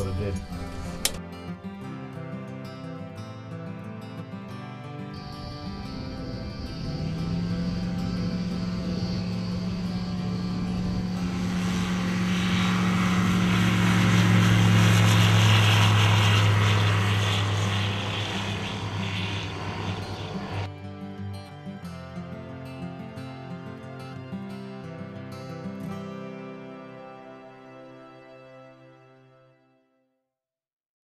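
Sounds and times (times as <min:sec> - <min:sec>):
light aircraft propeller engine: 0:00.0 - 0:02.6, 0:05.2 - 0:20.7
music: 0:00.0 - 0:15.5, 0:16.4 - 0:30.4.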